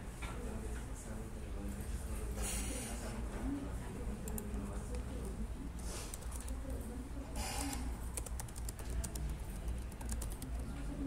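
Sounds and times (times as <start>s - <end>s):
keyboard keystroke clicks: 8.2s - 10.6s.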